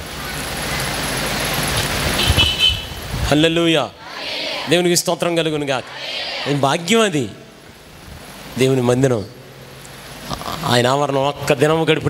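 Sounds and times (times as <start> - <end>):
brief horn toot: 2.2 - 3.0.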